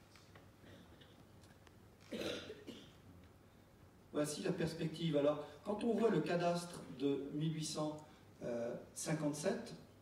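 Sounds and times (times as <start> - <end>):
person coughing: 2.1 - 3.0.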